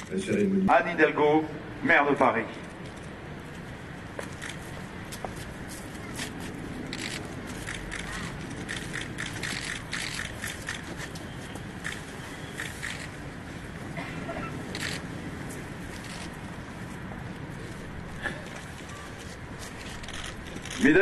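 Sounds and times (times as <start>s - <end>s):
outdoor street hum: 0.0s - 21.0s.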